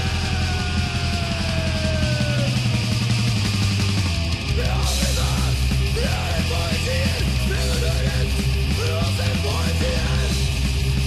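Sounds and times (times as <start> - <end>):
hardcore punk band playing: 0.0 - 11.0
yelled vocals: 0.0 - 11.0.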